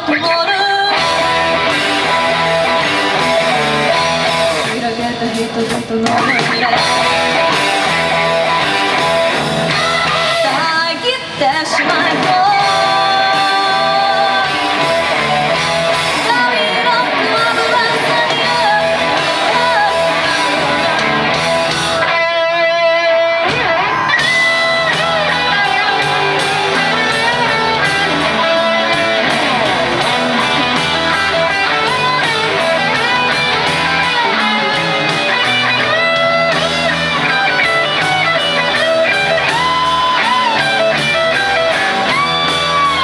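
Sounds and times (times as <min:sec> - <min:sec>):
bending guitar lead lines: 0:00.0 - 0:43.0
live rock band playing: 0:00.0 - 0:43.0.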